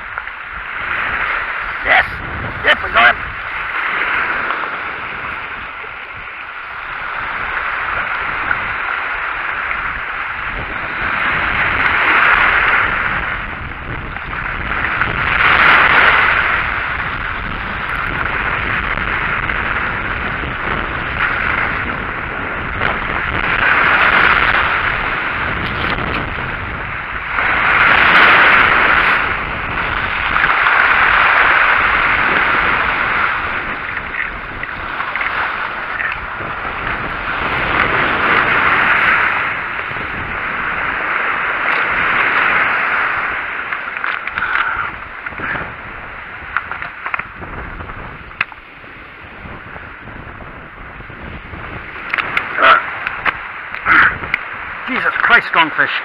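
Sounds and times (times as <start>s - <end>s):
waves washing onto stony beach: 0.0s - 56.0s
wind rumbling on microphone: 0.0s - 56.0s.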